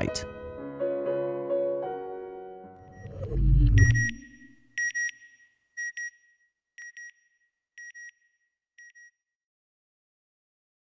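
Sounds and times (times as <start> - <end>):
electronic double beep: 2.8 - 5.2
low rumble: 2.9 - 4.4.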